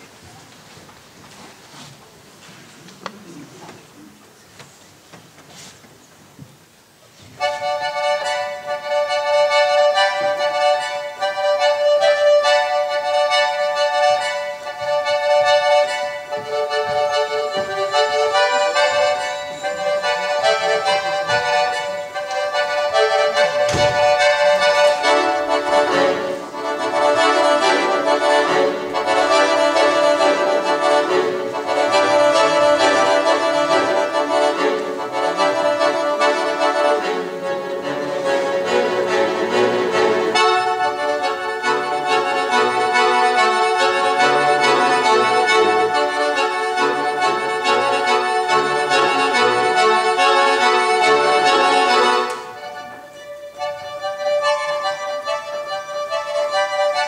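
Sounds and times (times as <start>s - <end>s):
solo accordion playing: 7.4s - 57.0s
short sharp thump: 23.5s - 24.2s.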